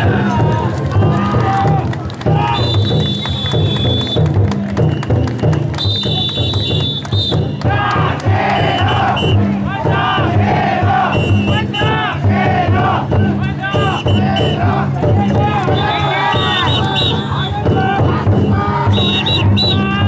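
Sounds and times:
crowd shouting: 0.0 - 3.8, 6.1 - 20.0
big drum beaten in steady rhythm: 0.0 - 20.0
chanting voices: 7.6 - 20.0.

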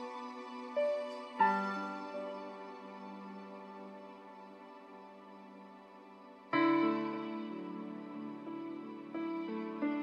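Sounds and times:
slow piano music: 0.0 - 10.0.

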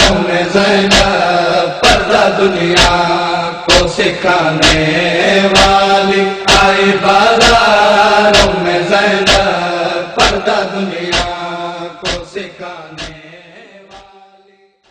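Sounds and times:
rhythmic sharp strikes: 0.0 - 3.1, 3.7 - 4.9, 5.5 - 5.8, 6.4 - 6.8, 7.4 - 9.6, 10.2 - 11.4, 12.0 - 12.4, 13.9 - 14.1
lament chanting: 0.0 - 14.2.

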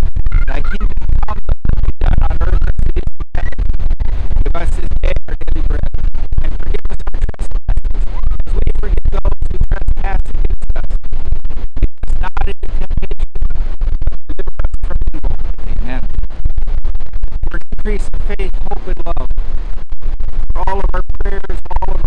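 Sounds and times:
wind buffeting microphone: 0.0 - 22.0
man speaking: 0.4 - 1.4, 2.0 - 3.5, 4.4 - 5.8, 6.4 - 11.0, 12.2 - 13.2, 15.7 - 16.1, 17.5 - 19.3, 20.6 - 22.0.

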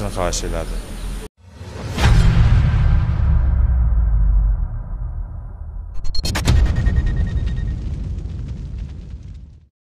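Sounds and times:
low rumbling boom: 1.6 - 9.7.

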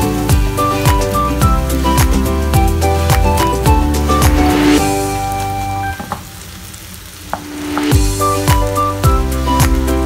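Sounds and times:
background music: 0.0 - 6.4, 7.4 - 10.0
mushrooms sizzling in a frying pan: 3.8 - 10.0.

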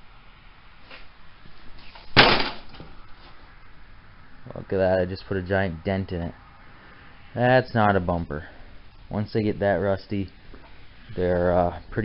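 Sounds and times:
boot striking metal bumper: 2.1 - 2.9.

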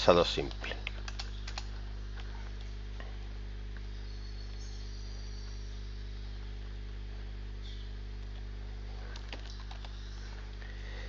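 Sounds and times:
low electrical hum: 0.0 - 11.0
computer keyboard keystrokes: 0.5 - 1.7, 9.2 - 10.0.

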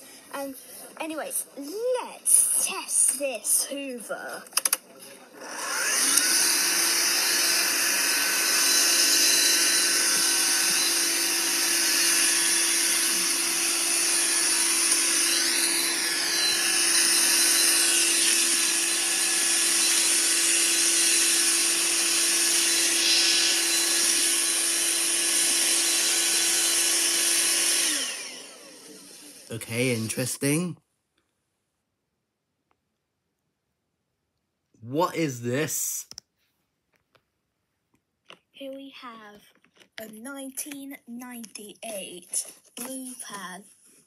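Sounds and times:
stick vacuum cleaner running: 5.4 - 30.2.

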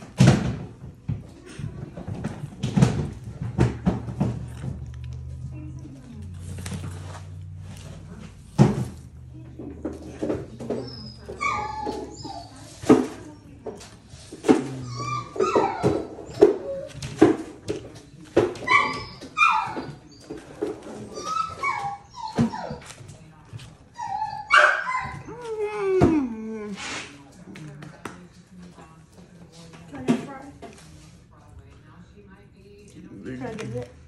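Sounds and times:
dog whimpering: 10.2 - 13.3, 14.4 - 17.2, 18.6 - 23.0, 23.9 - 26.9.

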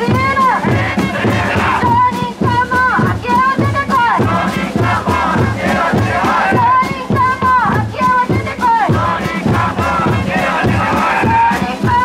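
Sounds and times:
woman shouting into microphone: 0.0 - 0.9, 1.7 - 4.2, 6.5 - 8.9, 11.4 - 12.0
steady drum beat: 0.0 - 12.0
crowd chanting slogans: 0.5 - 2.0, 4.2 - 7.1, 8.8 - 12.0.

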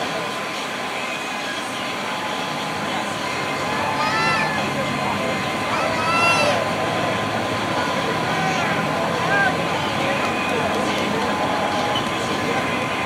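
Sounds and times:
indistinct voices: 0.0 - 13.0
mechanical hum with whine: 0.0 - 13.0.

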